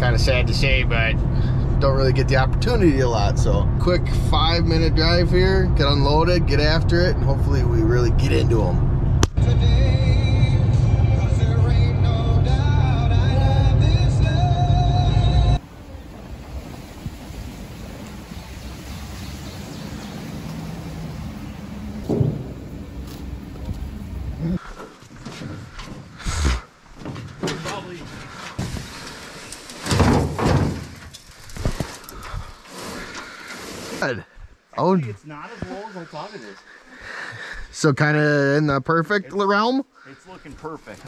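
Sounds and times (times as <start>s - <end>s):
vehicle rumble on dirt track: 0.0s - 24.8s
canoe knocking and scraping: 24.7s - 34.1s.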